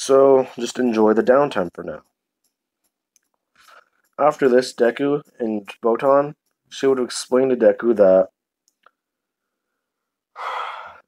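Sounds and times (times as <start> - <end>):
person sighing breath: 10.3 - 11.0.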